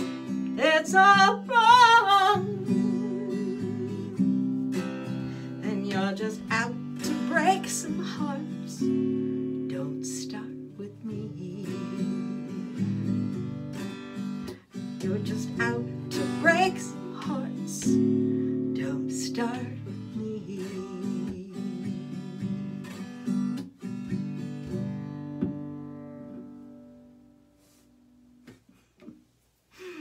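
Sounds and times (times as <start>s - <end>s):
acoustic guitar strumming: 0.0s - 28.5s.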